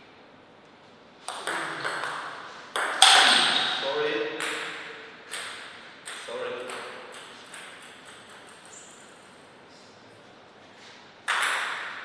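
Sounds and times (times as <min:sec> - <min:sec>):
table tennis ball bouncing: 0:01.3 - 0:09.3, 0:11.2 - 0:12.0.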